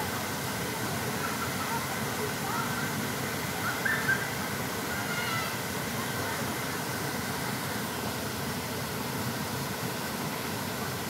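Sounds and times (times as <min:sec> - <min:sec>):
waterfall pouring into a pool: 0:00.0 - 0:11.0.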